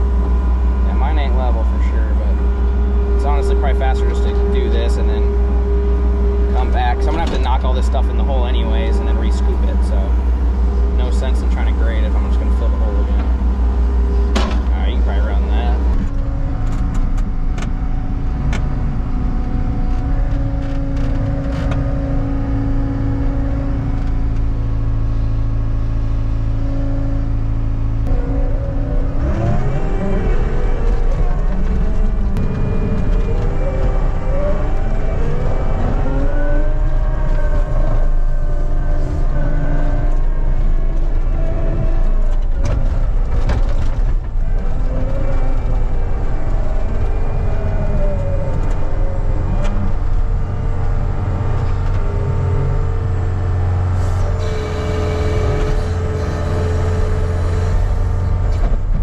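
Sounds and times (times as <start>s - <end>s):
diesel engine and hydraulics whine: 0.0s - 59.0s.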